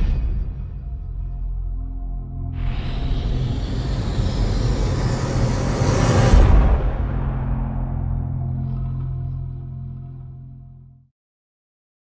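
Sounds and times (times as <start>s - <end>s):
low drone: 0.0s - 11.1s
rushing noise swell: 2.4s - 8.6s.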